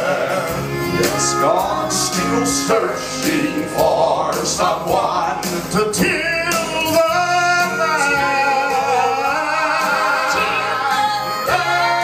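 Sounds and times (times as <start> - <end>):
gospel trio singing in harmony: 0.0 - 12.0
instrumental accompaniment: 0.0 - 12.0.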